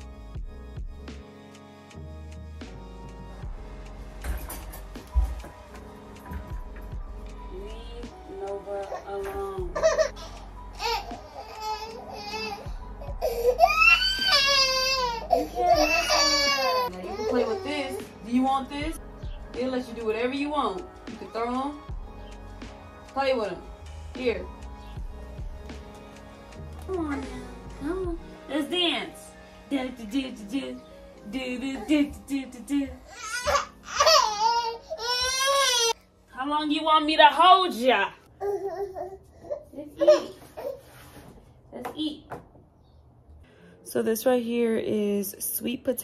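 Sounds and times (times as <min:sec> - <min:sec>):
baby crying: 0:08.8 - 0:18.2, 0:33.0 - 0:36.0, 0:38.3 - 0:40.9.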